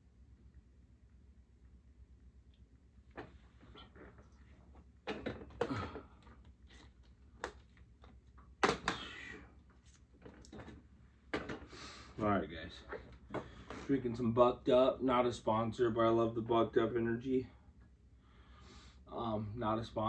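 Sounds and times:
objects knocking and clunking: 3.1s - 9.2s, 10.2s - 11.7s, 13.0s - 13.9s
objects rustling: 9.7s - 12.2s.

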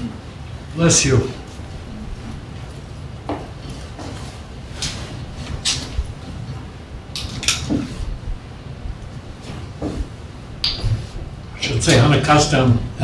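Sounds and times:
steady low hum: 0.0s - 13.0s
rustles and knocks: 2.5s - 8.2s, 9.0s - 11.3s.

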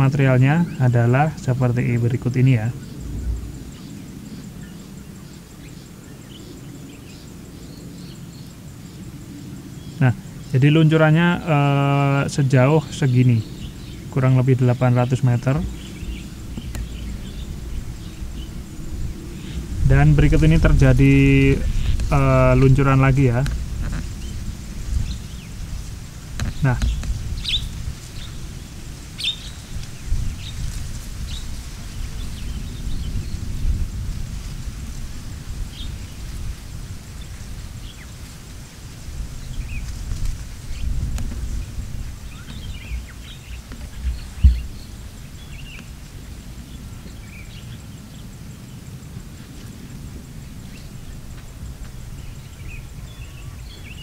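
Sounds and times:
birds chirping: 0.0s - 54.0s
distant rockfall rumble: 10.0s - 48.3s
short thump: 43.8s - 44.8s.

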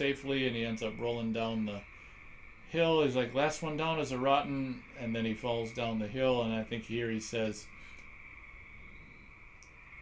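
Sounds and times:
low background hiss: 0.0s - 10.0s
steady high-pitched hum: 0.0s - 10.0s.

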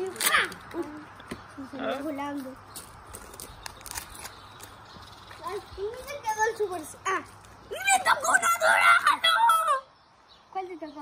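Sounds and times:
child's voice rising in pitch: 5.4s - 9.9s.

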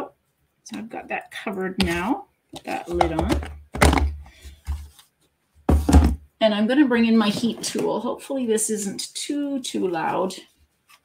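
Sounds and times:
dull plastic knocks and thumps: 1.8s - 4.9s, 5.7s - 6.3s
lid pressed onto plastic tub: 2.9s - 4.8s.

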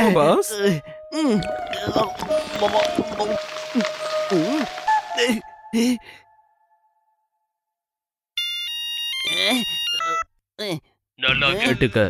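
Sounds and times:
person talking: 0.0s - 6.1s, 11.3s - 12.0s.

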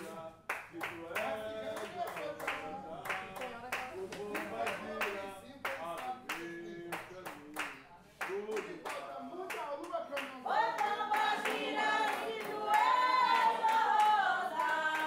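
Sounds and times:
group singing: 0.0s - 7.7s, 8.3s - 15.0s
hands clapping in rhythm: 0.0s - 15.0s.

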